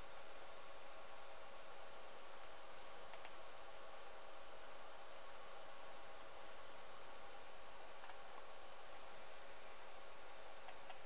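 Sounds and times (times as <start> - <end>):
low hiss and hum: 0.0 - 11.0
computer mouse clicks: 2.4 - 3.4, 8.0 - 8.6, 10.6 - 11.0.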